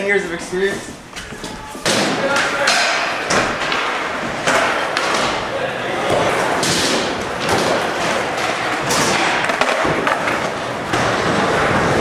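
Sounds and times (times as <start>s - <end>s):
skateboard wheels rolling on floor: 0.4s - 12.0s
skateboard thuds and clacks: 6.1s - 12.0s.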